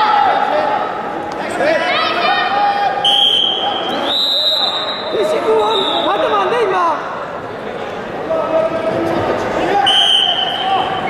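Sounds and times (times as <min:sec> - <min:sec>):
voices calling out in echoing hall: 0:00.0 - 0:11.0.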